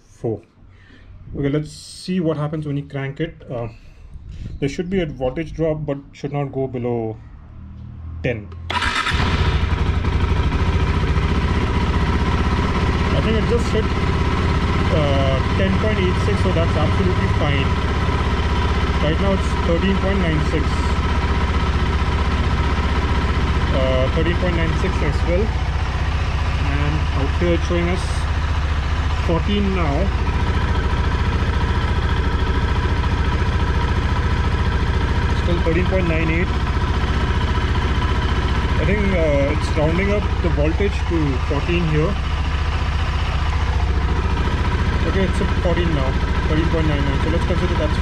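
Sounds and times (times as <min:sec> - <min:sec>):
motorcycle engine idling: 0:08.7 - 0:48.0.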